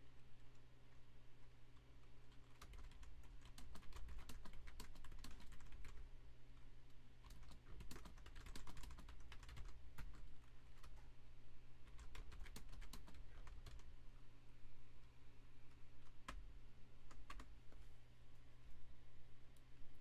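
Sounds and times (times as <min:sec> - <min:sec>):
low steady hum: 0:00.0 - 0:20.0
typing on computer keyboard: 0:01.8 - 0:06.0, 0:07.2 - 0:11.0, 0:11.8 - 0:13.9, 0:16.0 - 0:16.4, 0:17.0 - 0:17.5.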